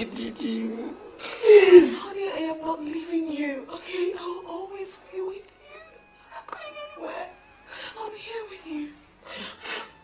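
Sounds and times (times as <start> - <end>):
woman crying: 0.1 - 6.0.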